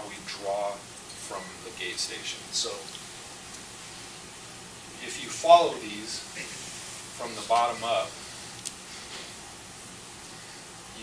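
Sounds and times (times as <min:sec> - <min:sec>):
steady recording hiss: 0:00.0 - 0:11.0.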